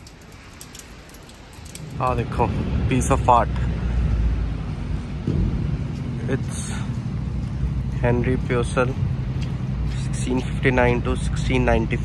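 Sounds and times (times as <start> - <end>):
vehicle engine rumble: 0.0 - 12.0
man's voice: 9.9 - 12.0.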